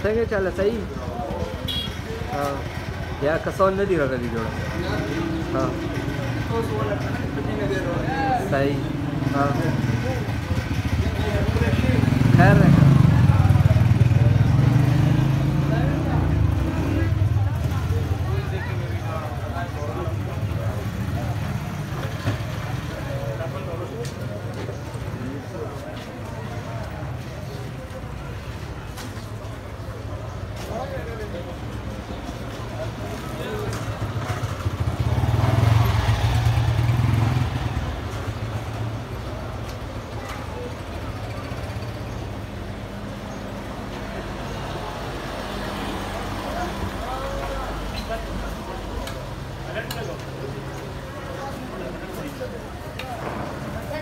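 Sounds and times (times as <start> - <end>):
motorcycle engine passing: 4.6 - 18.6, 33.0 - 39.9.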